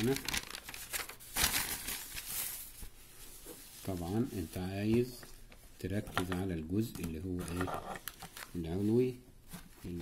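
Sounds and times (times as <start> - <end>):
paper rustling and crinkling: 0.0 - 5.3, 6.2 - 10.0.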